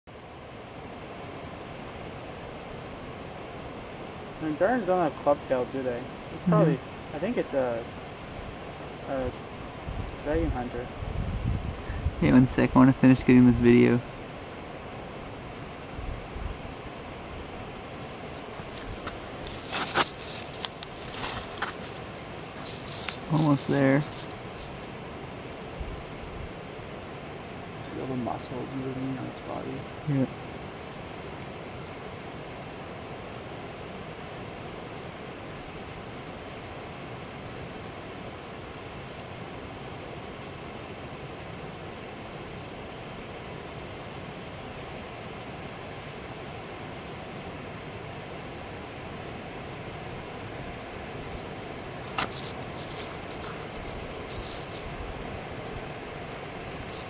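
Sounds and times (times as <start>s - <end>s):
faint high chirp: 44.3s - 57.0s.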